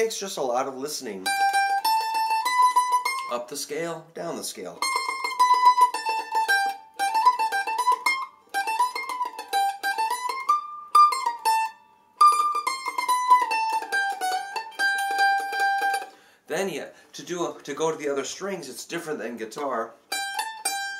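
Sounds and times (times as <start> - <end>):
mandolin tremolo picking: 0.0 - 16.4, 18.7 - 20.9.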